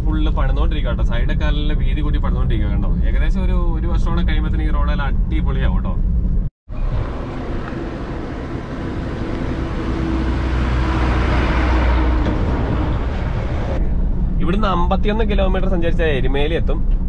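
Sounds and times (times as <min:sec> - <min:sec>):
bus engine approaching: 0:06.0 - 0:17.0.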